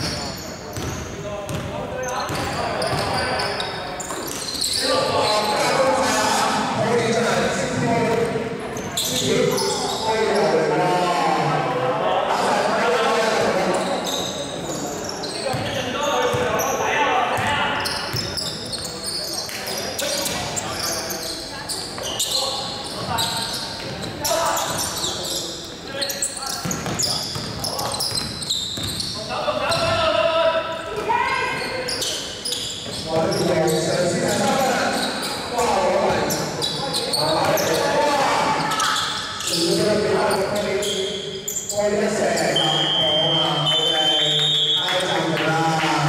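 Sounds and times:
people shouting and talking: 0.0 - 46.0.

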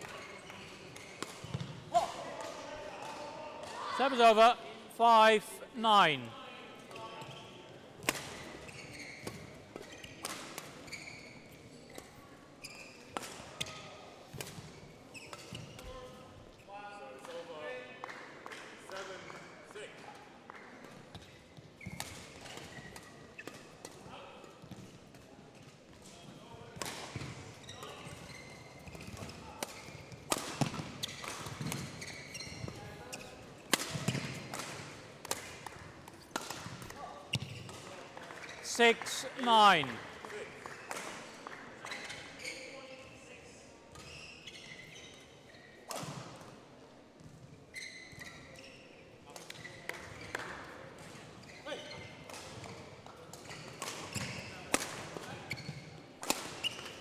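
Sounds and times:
background voices: 38.7 - 40.0.

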